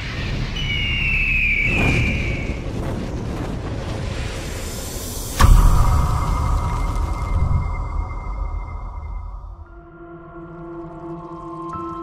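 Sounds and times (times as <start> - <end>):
deep rumbling boom: 0.0 - 9.9.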